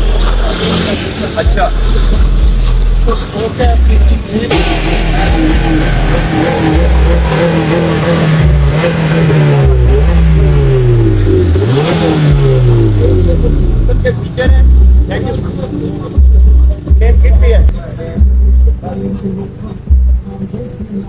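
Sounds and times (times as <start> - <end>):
car engine revving: 0.0 - 20.7
deep low rumble: 3.8 - 15.2.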